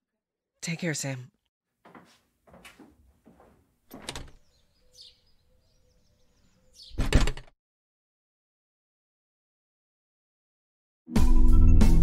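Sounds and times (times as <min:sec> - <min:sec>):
door opening: 0:02.0 - 0:04.6, 0:06.8 - 0:07.5
door shutting: 0:03.9 - 0:04.5, 0:06.8 - 0:07.5.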